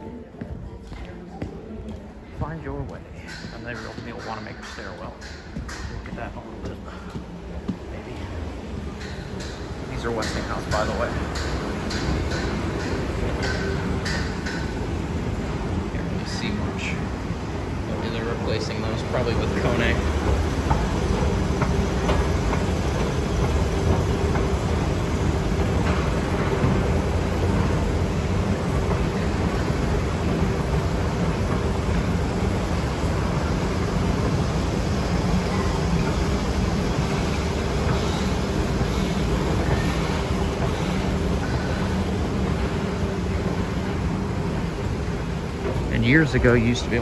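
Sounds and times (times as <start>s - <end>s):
escalator rumbling and humming: 0.0s - 47.0s.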